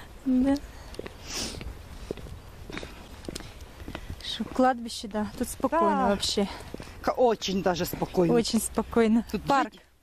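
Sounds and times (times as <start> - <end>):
footsteps on stone path: 0.0 - 10.0
short breathy hiss: 1.2 - 1.7.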